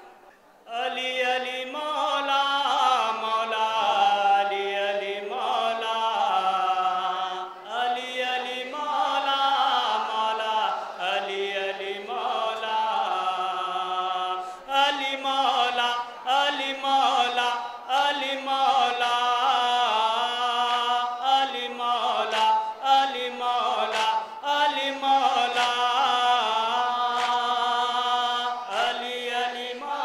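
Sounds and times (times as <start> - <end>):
man chanting a lament: 0.7 - 30.0.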